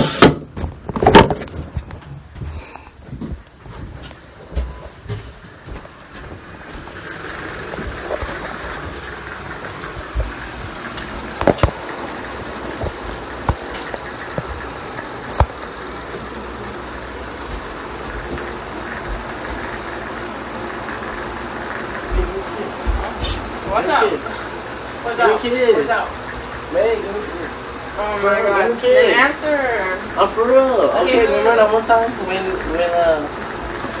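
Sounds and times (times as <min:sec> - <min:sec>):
steady background hum: 0:00.0 - 0:34.0.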